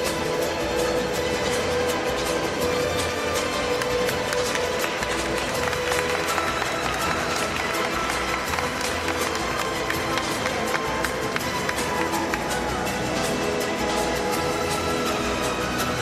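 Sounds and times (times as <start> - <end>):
music over sound system: 0.0 - 16.0.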